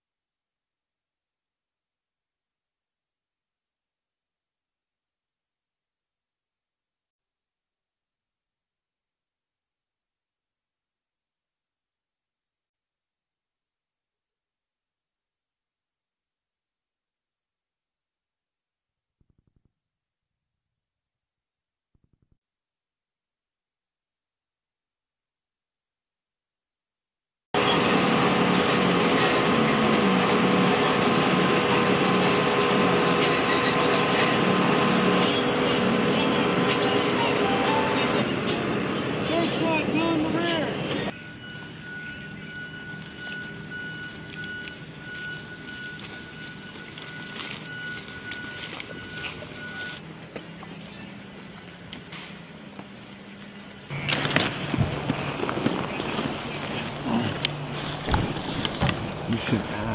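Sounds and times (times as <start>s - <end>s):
voices: 27.6s - 41.1s, 53.9s - 59.9s
bus engine running: 27.6s - 59.9s.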